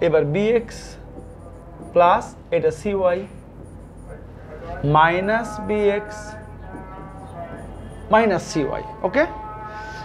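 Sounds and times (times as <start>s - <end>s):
man speaking: 0.0s - 3.4s, 4.0s - 9.4s.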